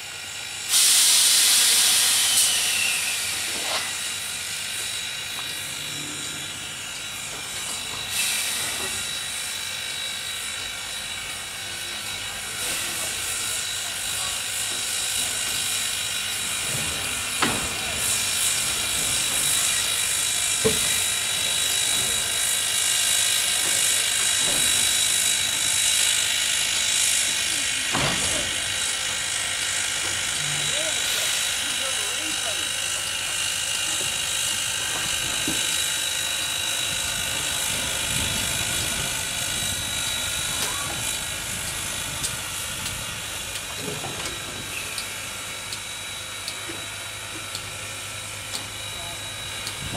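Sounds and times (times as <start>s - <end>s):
steam locomotive hissing steam: 0.0s - 49.9s.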